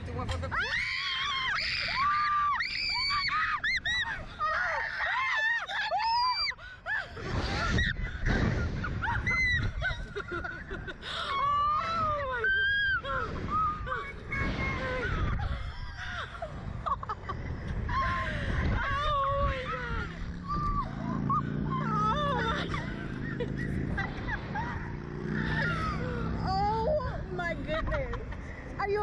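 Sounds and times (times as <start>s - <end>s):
women screaming: 0.5s - 17.1s, 17.9s - 27.8s.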